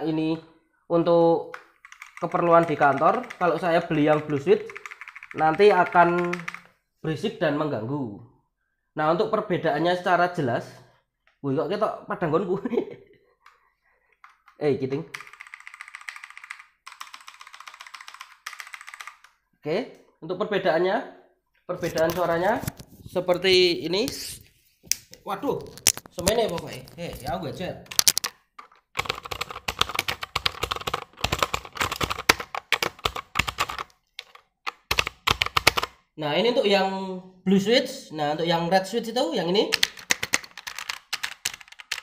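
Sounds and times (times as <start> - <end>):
mechanical keyboard keys clattering: 1.8 - 6.6, 15.1 - 19.3, 27.9 - 35.9, 39.7 - 42.0.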